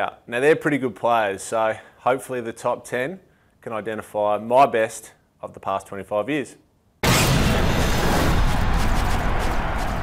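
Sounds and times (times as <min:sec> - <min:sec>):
rumbling boom hit: 0:07.0 - 0:10.0.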